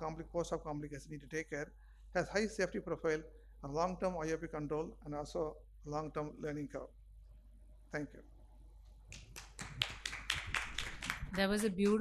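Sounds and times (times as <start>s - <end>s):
small audience applauding: 9.1s - 12.0s.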